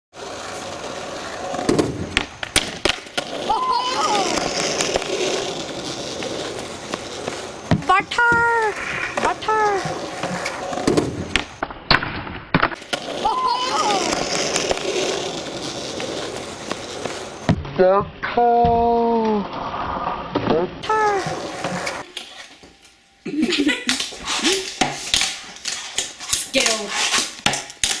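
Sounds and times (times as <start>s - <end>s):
skateboard wheels rolling on asphalt: 0.1s - 22.7s, 24.0s - 28.0s
excited voices and cries: 3.5s - 4.4s, 13.2s - 14.2s.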